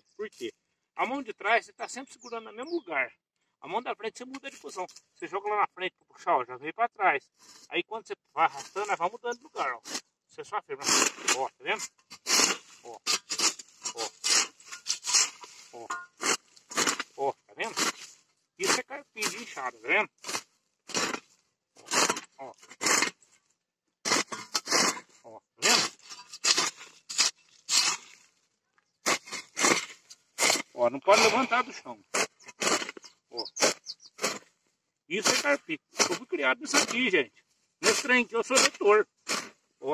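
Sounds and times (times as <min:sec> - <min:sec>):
hoe scraping through soil: 0:10.8 - 0:23.3, 0:24.0 - 0:28.3, 0:29.0 - 0:34.6, 0:35.2 - 0:37.2, 0:37.8 - 0:39.6.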